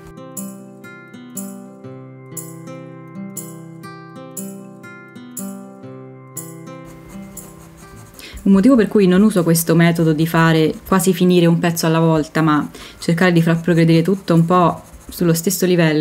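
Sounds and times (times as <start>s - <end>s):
plucked acoustic guitar: 0.0s - 8.3s.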